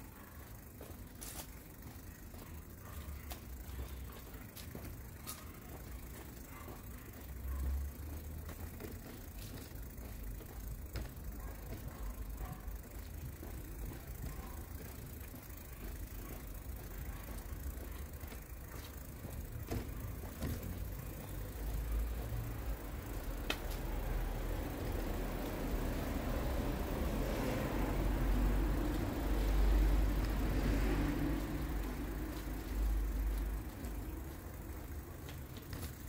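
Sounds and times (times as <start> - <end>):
distant road traffic rumble: 0.0 - 36.0
faint ticks: 7.5 - 25.8.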